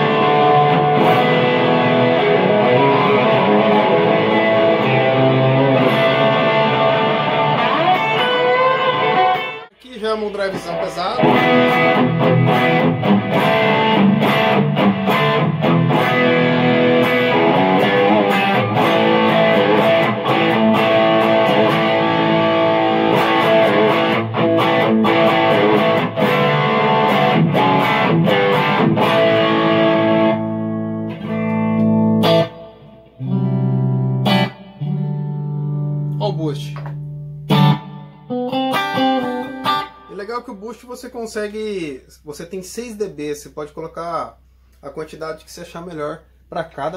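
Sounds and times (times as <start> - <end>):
distorted electric guitar: 0.0 - 40.3.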